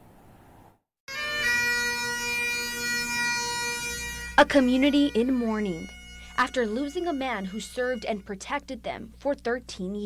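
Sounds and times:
bagpipes playing a held note: 1.1 - 8.4
bagpipe drones: 1.1 - 8.5.

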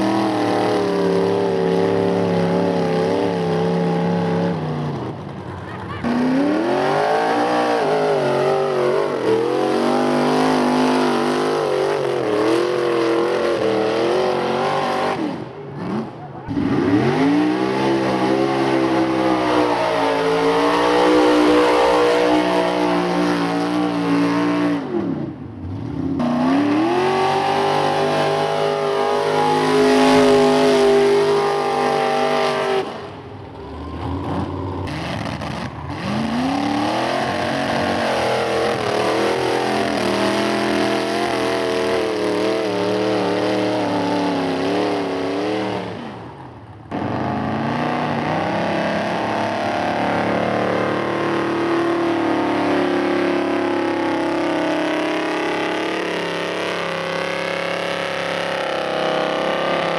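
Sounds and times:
truck engines revving: 0.0 - 59.9.

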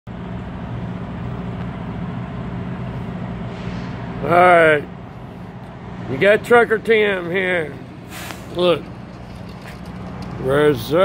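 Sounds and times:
vehicle engine droning: 0.1 - 11.0.

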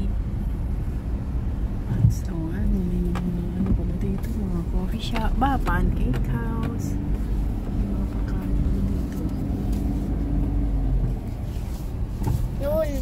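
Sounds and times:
engine and road rumble: 0.0 - 13.0.

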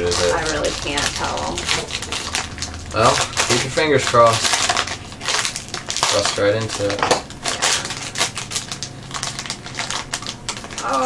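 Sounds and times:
foil pouch crinkling: 0.0 - 11.0.

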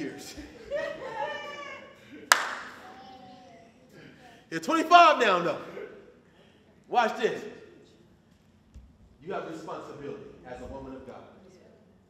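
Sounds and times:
hand clap ringing in room: 2.3 - 2.8.

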